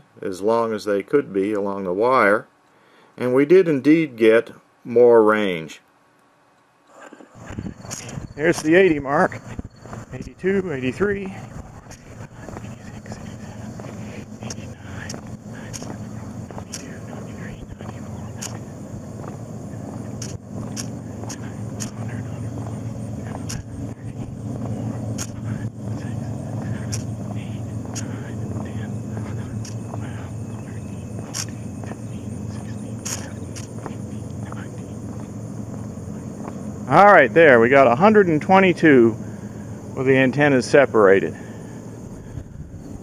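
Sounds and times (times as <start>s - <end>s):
steady low rumble: 7.2s - 43.0s
footsteps on paved road: 7.5s - 38.4s.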